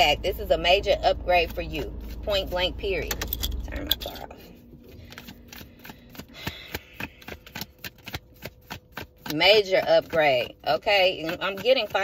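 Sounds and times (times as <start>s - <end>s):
cards being shuffled: 4.3s - 9.4s.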